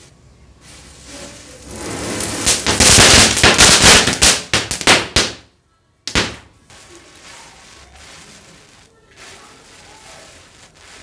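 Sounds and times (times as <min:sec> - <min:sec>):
rising hiss of fuse: 0:00.6 - 0:04.5, 0:06.7 - 0:11.0
firecrackers banging: 0:01.1 - 0:05.5, 0:06.1 - 0:11.0.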